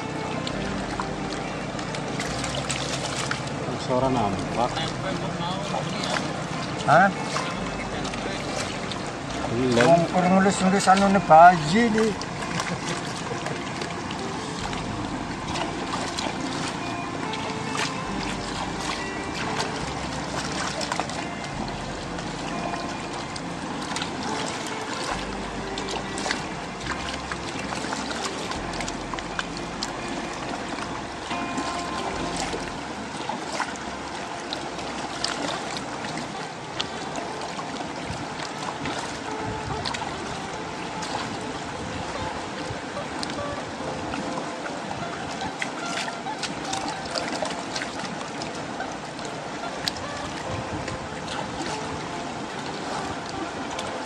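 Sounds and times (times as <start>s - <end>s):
background music: 0.0s - 54.0s
water trickling: 0.0s - 54.0s.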